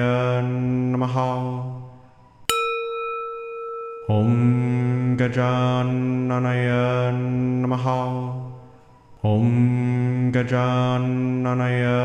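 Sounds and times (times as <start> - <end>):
struck bell ringing: 2.5 - 5.2.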